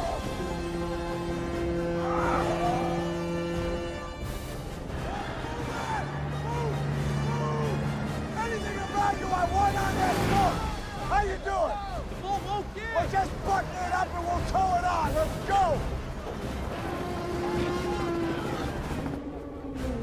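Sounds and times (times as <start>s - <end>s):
orchestral score with low notes: 0.0s - 20.0s.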